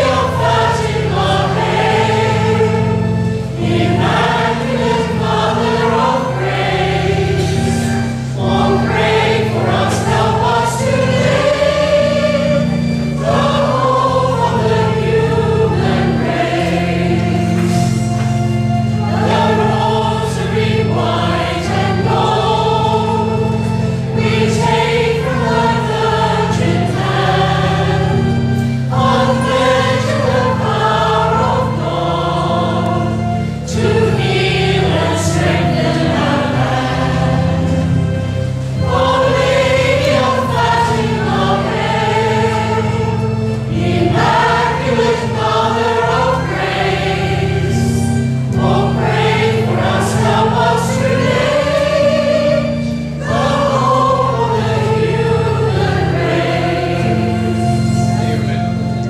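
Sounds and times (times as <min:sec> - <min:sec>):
choir singing a hymn: 0:00.0 - 0:59.0
sustained low chordal accompaniment: 0:00.0 - 0:59.0.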